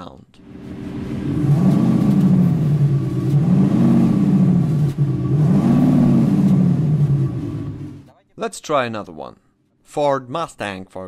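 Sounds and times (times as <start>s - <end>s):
car engine idling: 0.4s - 8.1s
car engine revving: 0.4s - 8.1s.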